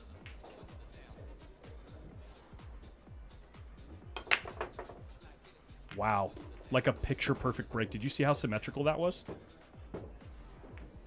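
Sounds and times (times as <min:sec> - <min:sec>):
background music with steady beat: 0:00.0 - 0:11.0
pool balls cracking and clicking: 0:04.2 - 0:05.0, 0:05.9 - 0:06.5.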